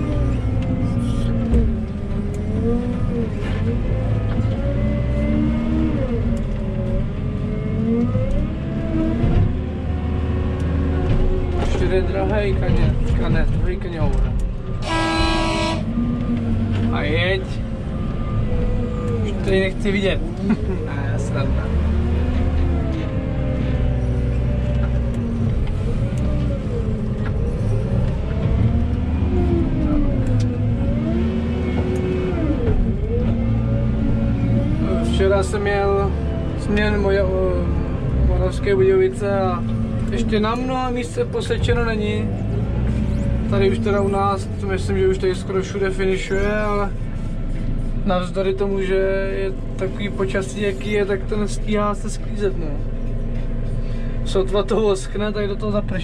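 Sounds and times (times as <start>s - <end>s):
diesel engine revving: 0.0s - 56.0s.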